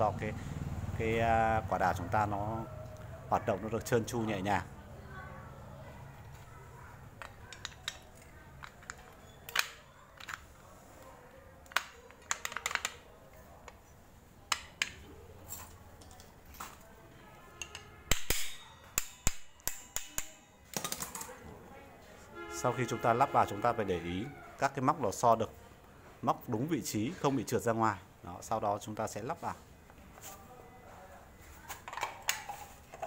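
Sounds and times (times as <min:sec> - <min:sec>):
metal parts clicking and clinking: 0:07.2 - 0:10.5, 0:11.6 - 0:13.0, 0:17.6 - 0:21.4.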